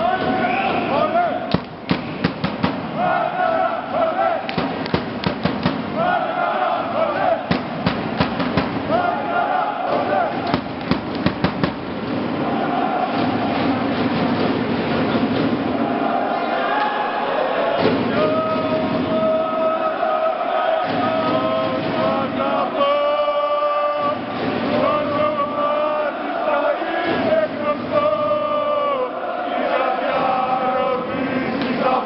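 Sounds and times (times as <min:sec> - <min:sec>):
sharp bangs: 0:00.0 - 0:03.5, 0:04.2 - 0:16.3
crowd chanting: 0:00.0 - 0:32.0.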